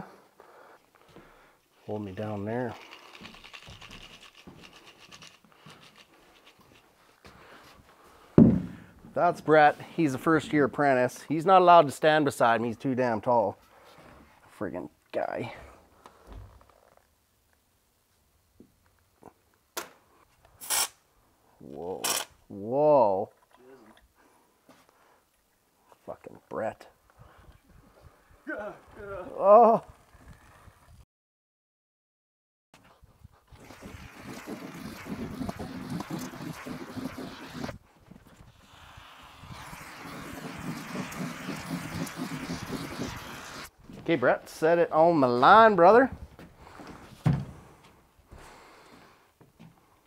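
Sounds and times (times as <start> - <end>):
short hissing bursts: 20.6 - 21.0, 33.5 - 37.8, 38.4 - 43.7.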